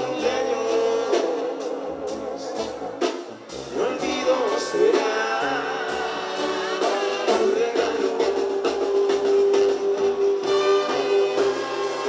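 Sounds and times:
brass holding long note: 5.8s - 12.0s.

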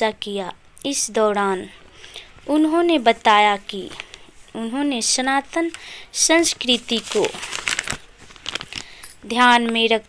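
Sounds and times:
person speaking: 0.0s - 8.0s, 9.1s - 10.0s
crackling and clicking noise: 5.5s - 10.0s.

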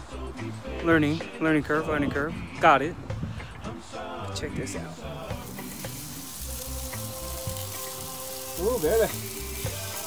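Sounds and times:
background music with low beat: 0.0s - 10.0s
chicken sizzling on grill: 5.0s - 10.0s.

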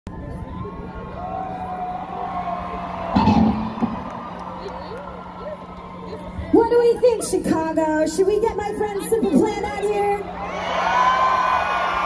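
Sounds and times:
crowd cheering and whistling: 0.1s - 6.9s, 10.1s - 12.0s
low hum from stage: 0.1s - 12.0s.

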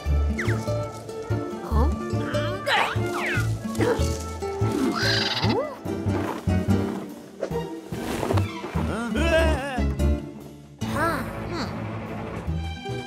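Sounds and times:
bouncy cartoon music: 0.0s - 7.8s, 8.4s - 13.0s.

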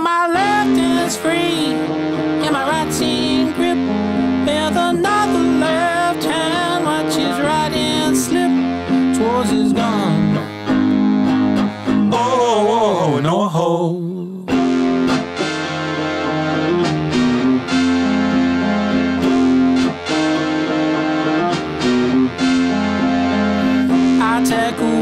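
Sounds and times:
electric guitar riff: 0.0s - 13.3s, 14.5s - 25.0s
keyboard: 0.3s - 13.2s, 14.5s - 25.0s
live rock band playing: 0.4s - 12.2s, 14.5s - 25.0s.

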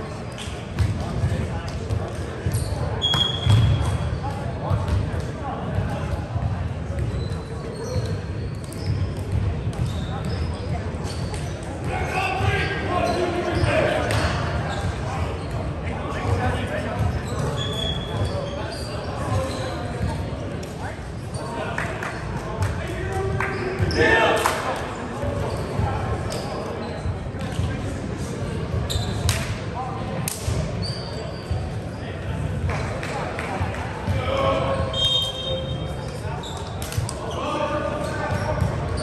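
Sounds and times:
balls bouncing on hardwood floor: 3.1s - 3.8s
players shouting in a gym: 11.1s - 19.9s, 22.6s - 26.9s.

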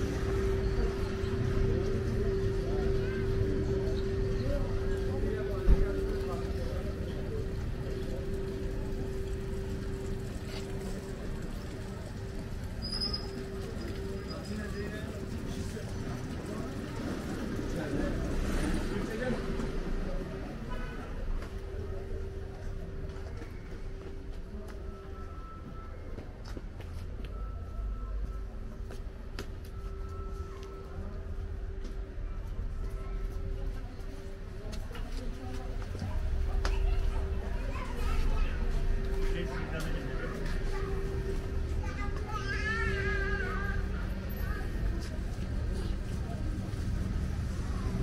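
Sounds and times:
low humming tone: 0.0s - 18.2s, 27.4s - 48.0s
people's voices: 0.0s - 48.0s.

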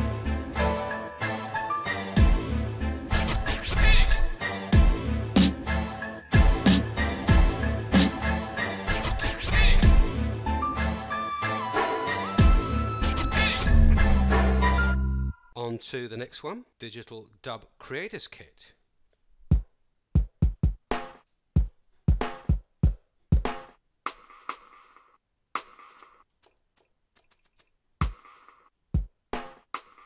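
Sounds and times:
hip-hop beat with strong bass: 0.0s - 15.0s.

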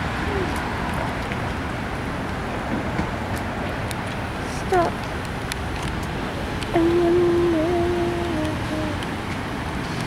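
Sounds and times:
cars driving along street: 0.0s - 10.0s.

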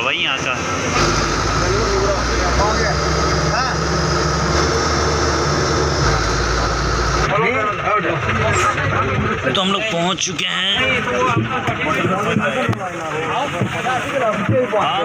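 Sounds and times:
bus engine and road rumble: 0.0s - 15.0s
passengers' voices: 0.0s - 15.0s.

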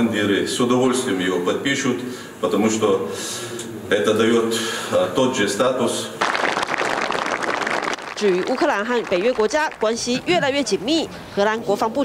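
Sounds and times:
group applauding: 6.2s - 10.1s.

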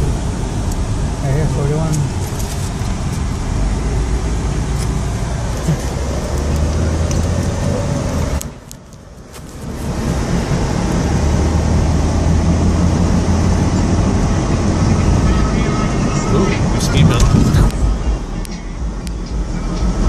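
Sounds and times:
car engine drone from inside cabin: 0.0s - 20.0s
road noise: 0.0s - 20.0s.

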